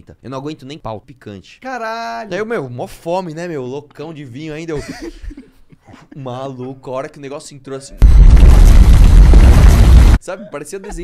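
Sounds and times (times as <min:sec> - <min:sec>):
distorted boom sound effect: 0:08.0 - 0:10.2.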